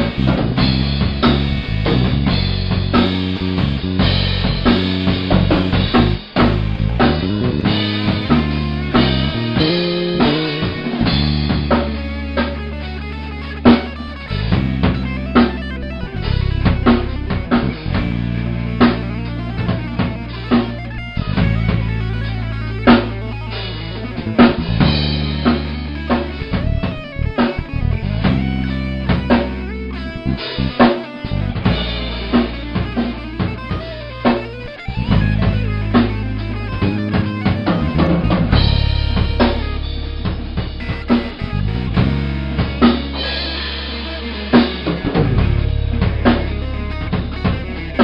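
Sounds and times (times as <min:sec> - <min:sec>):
drum kit playing rock groove: 0:00.0 - 0:48.0
instrumental rock track: 0:00.0 - 0:48.0.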